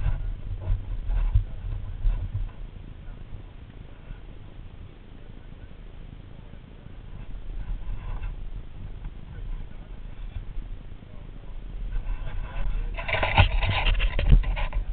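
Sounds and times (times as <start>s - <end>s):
voices: 0.0s - 14.9s.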